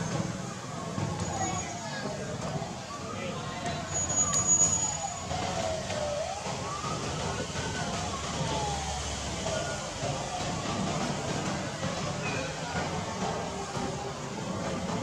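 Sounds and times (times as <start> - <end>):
siren wailing: 2.9 - 14.3.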